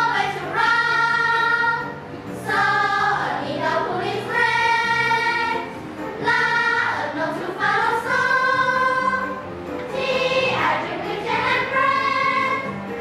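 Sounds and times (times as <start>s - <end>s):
children's choir singing: 0.0s - 12.9s.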